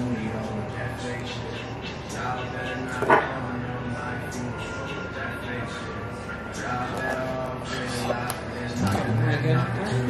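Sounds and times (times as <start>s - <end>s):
background music: 0.0s - 10.0s
people talking: 6.7s - 10.0s.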